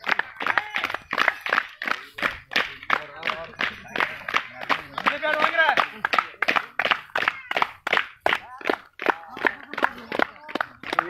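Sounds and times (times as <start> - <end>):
group clapping in time: 0.0 - 11.0.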